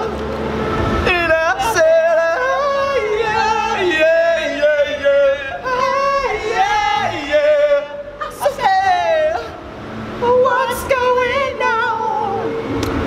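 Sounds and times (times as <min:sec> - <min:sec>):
young men singing mock yodelling: 0:01.1 - 0:09.6.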